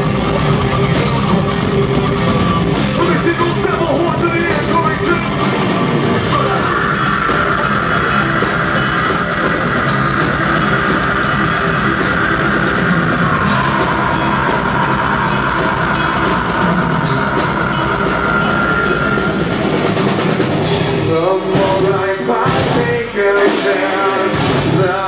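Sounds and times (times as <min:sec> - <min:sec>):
bass guitar: 0:00.0 - 0:25.0
distorted electric guitars: 0:00.0 - 0:25.0
drum kit with cymbals: 0:00.0 - 0:25.0.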